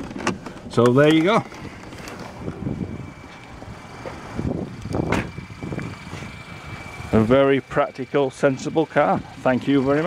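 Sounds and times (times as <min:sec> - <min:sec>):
handling and rustling noise: 0:00.0 - 0:04.3.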